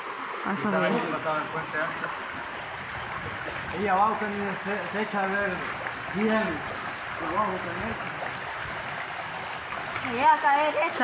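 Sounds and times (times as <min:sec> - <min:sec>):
river water running over rocks: 0:00.0 - 0:11.0.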